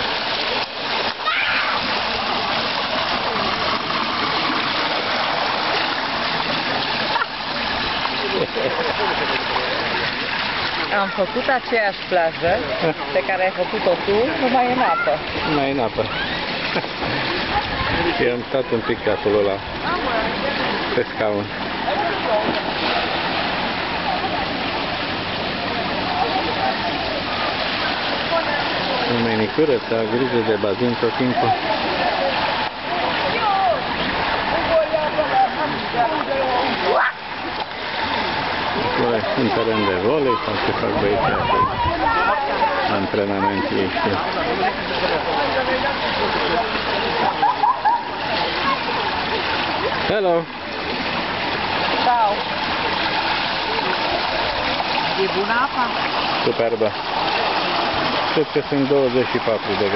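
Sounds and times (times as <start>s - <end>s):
fountain water splashing: 0.0s - 59.9s.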